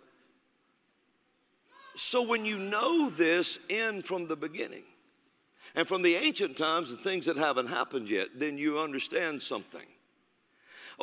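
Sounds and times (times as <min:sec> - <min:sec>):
man speaking: 0:02.0 - 0:05.0, 0:05.7 - 0:10.0.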